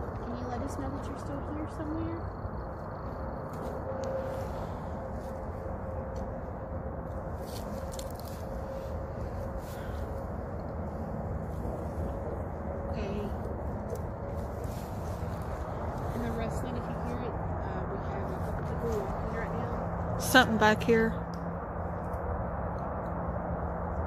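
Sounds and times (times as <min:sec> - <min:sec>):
faint steady hum: 0:00.0 - 0:24.0
outdoor background noise: 0:00.0 - 0:24.0.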